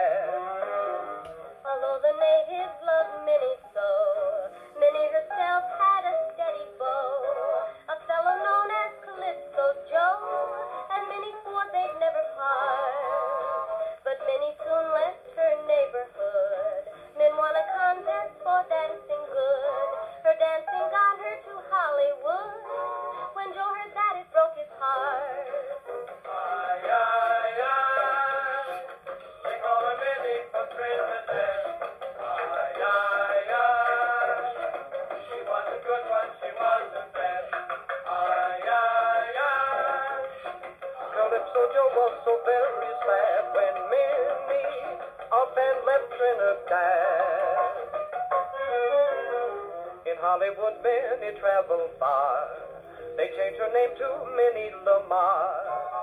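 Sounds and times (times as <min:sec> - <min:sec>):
gramophone playing dance-orchestra music: 0:00.0 - 0:01.9, 0:22.4 - 0:24.0.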